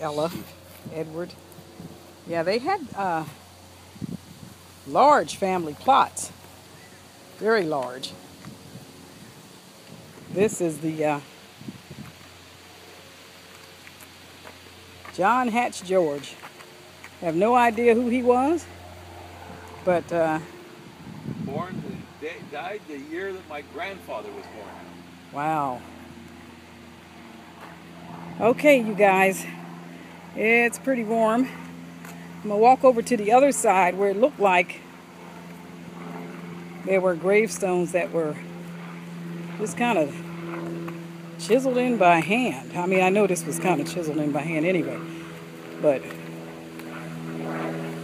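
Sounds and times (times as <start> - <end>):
engine droning steadily: 0.0 - 48.0.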